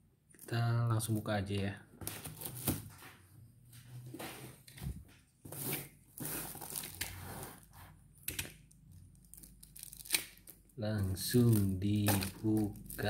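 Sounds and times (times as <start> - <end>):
plastic mailer crinkling: 9.1 - 13.0.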